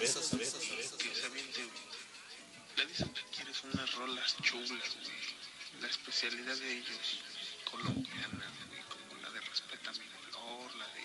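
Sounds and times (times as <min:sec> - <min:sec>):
recorded voice message playback: 0:00.0 - 0:02.1, 0:02.7 - 0:11.0.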